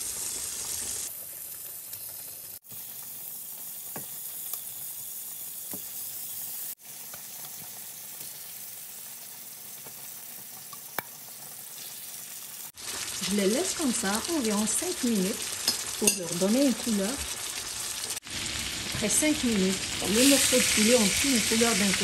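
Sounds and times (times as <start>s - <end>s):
chicken sizzling in butter: 0.0s - 22.0s.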